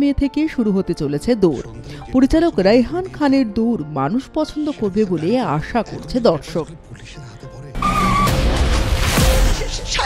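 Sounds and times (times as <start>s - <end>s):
quiet trailer music: 0.0s - 10.0s
short high squeal: 7.8s - 8.4s.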